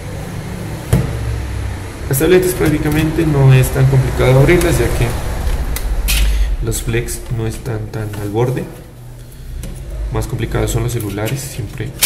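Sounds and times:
low background rumble: 1.8s - 11.6s.

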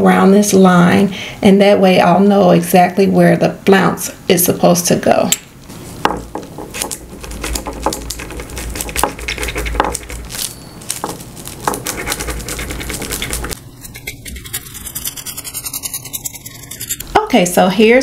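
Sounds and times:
tracing wheel clicking on paper: 6.8s - 17.0s.

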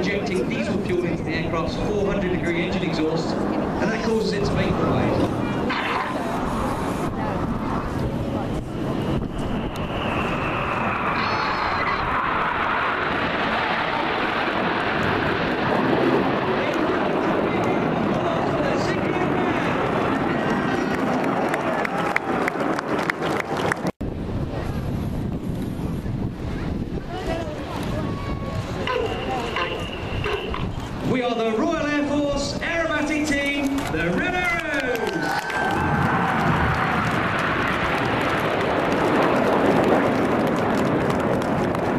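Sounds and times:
crowd chatter: 0.0s - 13.8s, 24.3s - 32.2s
jet flying past: 0.0s - 41.9s.

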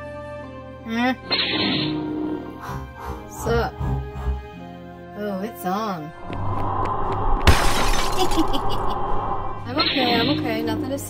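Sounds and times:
lightsaber hum: 1.2s - 4.6s.

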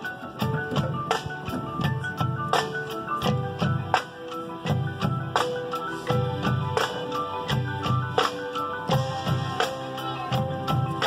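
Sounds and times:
marching band playing: 0.0s - 11.0s
ringing mallet percussion notes: 0.0s - 11.0s.

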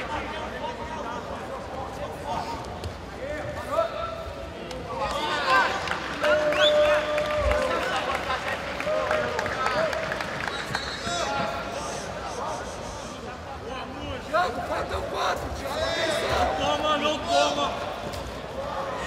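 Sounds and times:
crowd of voices talking: 0.0s - 19.0s.

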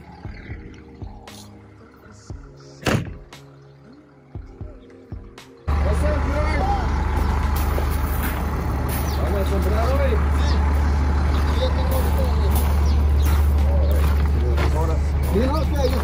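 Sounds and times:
faint background music: 0.0s - 16.0s
vehicle engine idling: 5.7s - 16.0s
footsteps: 7.1s - 16.0s
faint voices: 8.1s - 16.0s.

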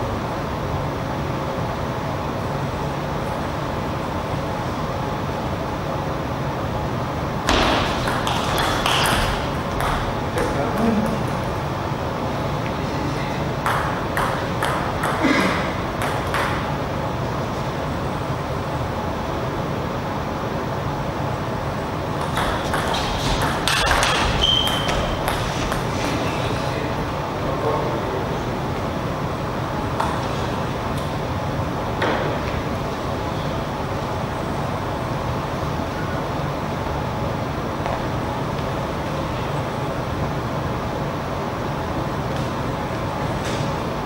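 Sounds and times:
steady low hum: 0.0s - 44.0s.

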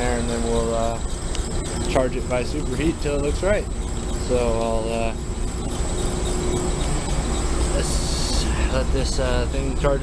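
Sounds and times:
air conditioner unit humming: 0.0s - 10.0s
thin high whine: 0.0s - 10.0s.

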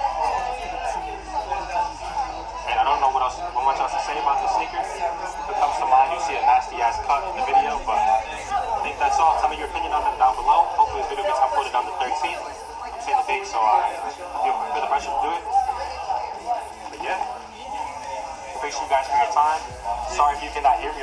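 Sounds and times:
diners talking: 0.0s - 21.0s
faint music: 0.0s - 21.0s.

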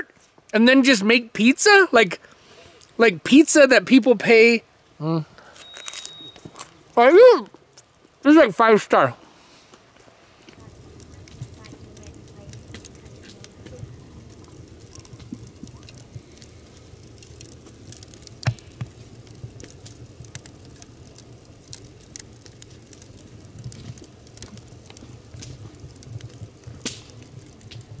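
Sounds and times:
low steady fire rumble: 0.0s - 28.0s
wood fire crackling and popping: 0.0s - 28.0s.

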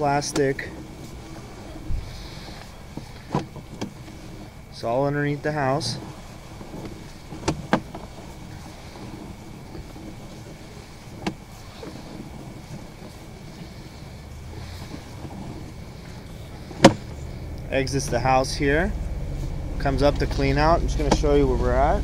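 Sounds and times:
faint steady whine: 0.0s - 22.0s
low rumble of cable in pipe: 0.0s - 22.0s.

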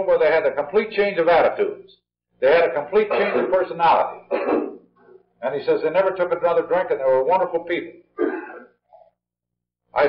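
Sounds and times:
person clearing throat: 3.0s - 3.6s, 4.2s - 5.3s, 8.2s - 9.2s.

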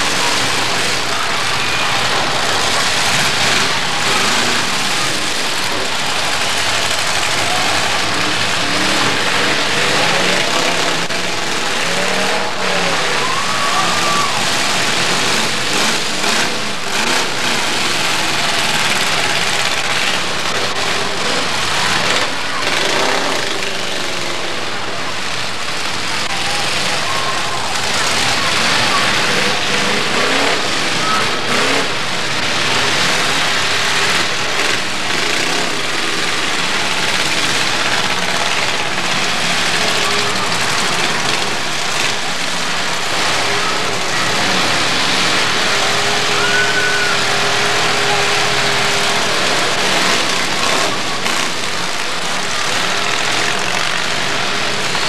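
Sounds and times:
car engines revving: 0.0s - 55.0s
crowd noise: 0.0s - 55.0s.

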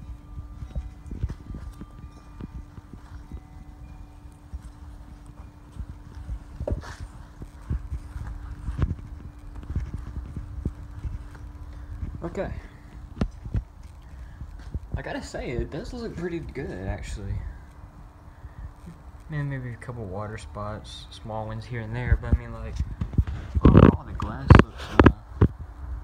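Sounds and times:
steady low hum: 0.0s - 26.0s
handling thumps and knocks: 4.6s - 15.1s.

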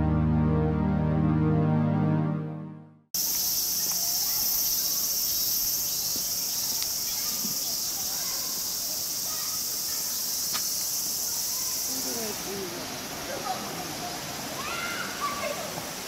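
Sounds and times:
cicadas droning: 3.2s - 16.0s.

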